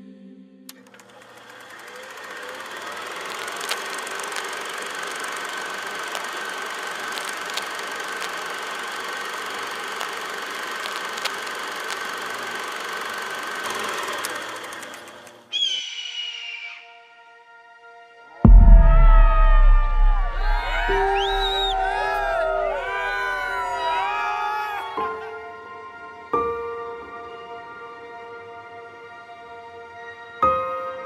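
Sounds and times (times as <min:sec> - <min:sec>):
film projector running: 0:00.8 - 0:15.5.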